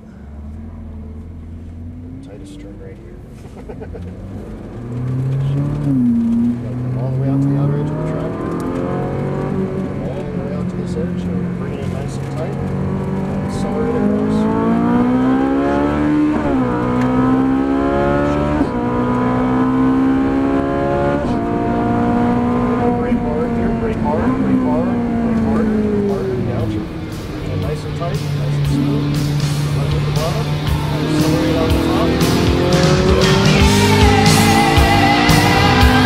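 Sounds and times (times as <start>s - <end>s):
car engine accelerating hard: 0.0s - 36.0s.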